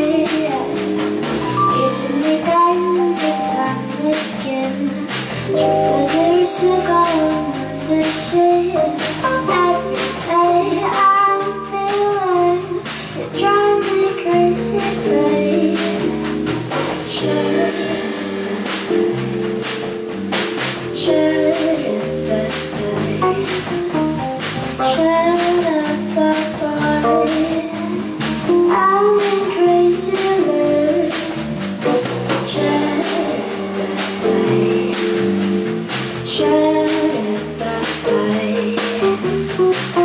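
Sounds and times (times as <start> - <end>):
woman singing into a microphone: 0.0 - 1.0, 1.7 - 16.3, 17.1 - 18.6, 21.0 - 23.8, 24.8 - 35.6, 36.3 - 39.5
live band playing: 0.0 - 40.0
steady percussion beat: 0.3 - 11.4, 14.8 - 25.6, 30.2 - 40.0.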